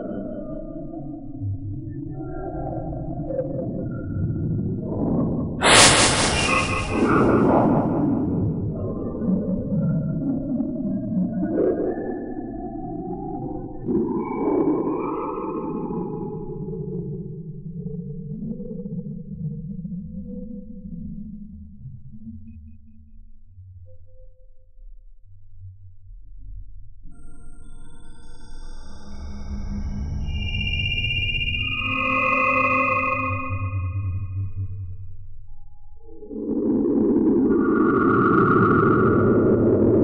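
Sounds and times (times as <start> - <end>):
low rumble: 4.8 - 9.6
rush of hiss: 5.6 - 8.2
noisy synthetic drone: 5.6 - 8.6.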